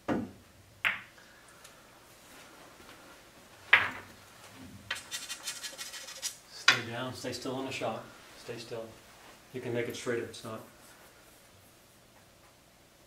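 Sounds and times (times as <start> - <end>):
pool balls clicking and rattling: 3.6 - 6.8.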